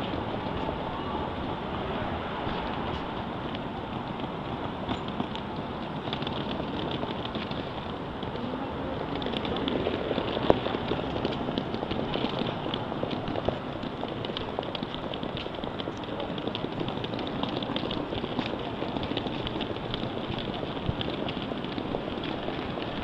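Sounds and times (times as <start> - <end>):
footsteps: 0.0 - 23.0
suitcase wheels rattling on stone: 0.0 - 23.0.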